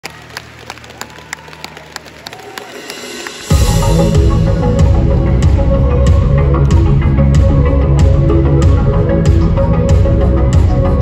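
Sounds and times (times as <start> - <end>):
bass-heavy pop track: 3.4 - 11.0.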